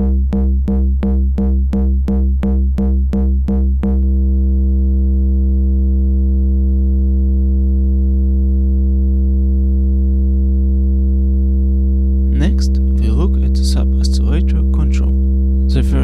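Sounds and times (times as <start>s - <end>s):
synthesizer low drone: 0.0s - 10.2s, 12.2s - 16.0s.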